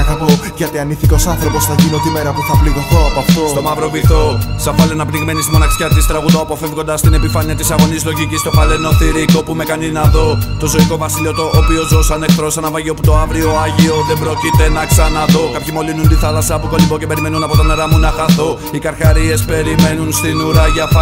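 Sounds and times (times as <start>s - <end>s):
rapping over a beat: 0.0s - 21.0s
deep kick drum: 1.0s - 1.4s, 4.0s - 4.4s, 7.1s - 7.4s, 13.0s - 13.4s, 19.1s - 19.4s.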